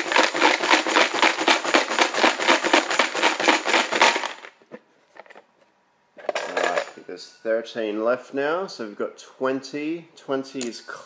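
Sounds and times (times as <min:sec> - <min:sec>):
plastic chips rattling in box: 0:00.0 - 0:04.6.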